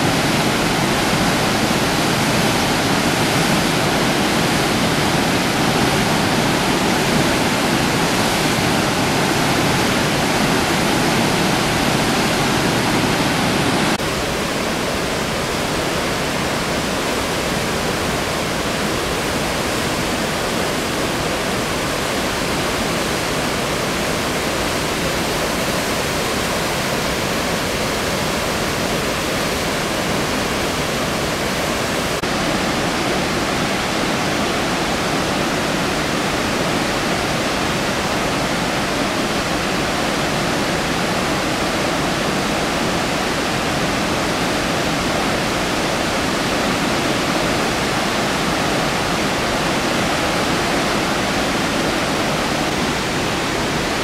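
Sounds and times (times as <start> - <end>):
white water rushing over rocks: 0.0 - 54.0.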